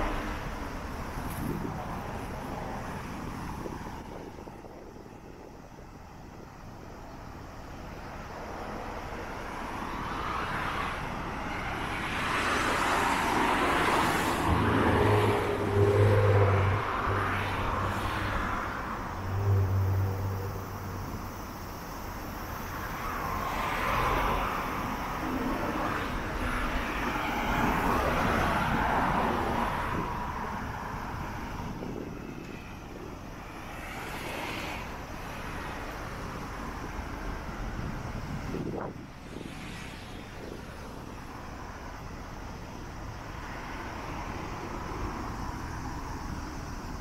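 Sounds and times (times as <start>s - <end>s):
traffic noise: 0.0s - 47.0s
vehicle passing: 12.2s - 21.4s.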